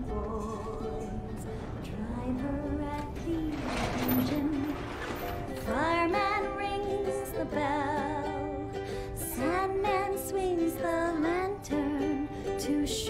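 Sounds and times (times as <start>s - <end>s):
plucked string accompaniment: 0.0s - 13.0s
woman singing with vibrato: 0.0s - 13.0s.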